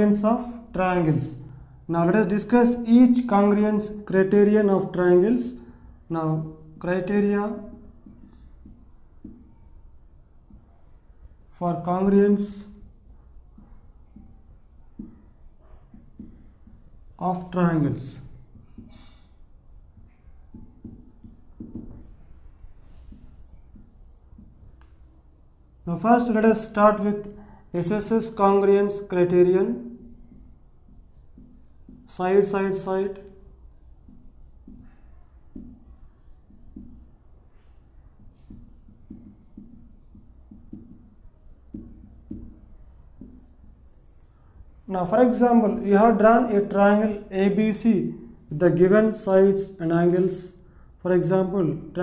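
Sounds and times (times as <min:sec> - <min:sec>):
marker writing on whiteboard: 0:00.0 - 0:52.0
high marker squeak: 0:32.8 - 0:40.1.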